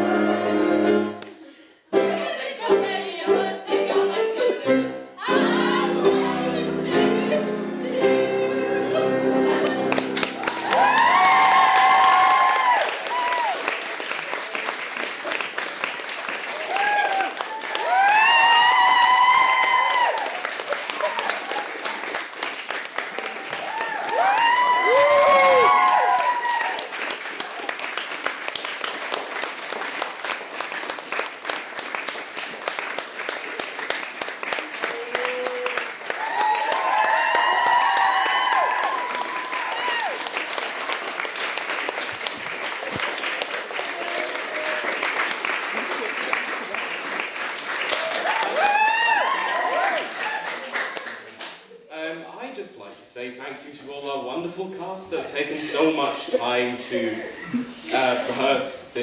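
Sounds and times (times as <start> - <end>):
audience applauding: 9.2 - 51.8.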